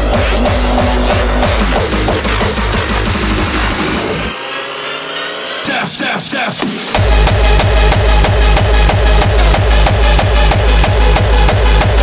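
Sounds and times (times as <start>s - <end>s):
heavy kick drum: 0.0s - 4.3s, 6.9s - 12.0s
sustained synth tones: 0.0s - 12.0s
sweeping pitch glides: 0.0s - 12.0s.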